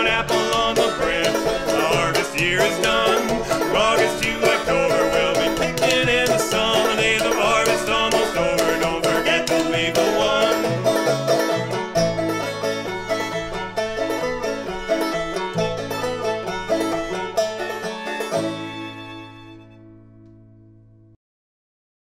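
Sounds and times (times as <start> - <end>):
fiddle: 0.0 - 20.5
upright bass: 0.0 - 20.6
banjo: 0.0 - 20.8.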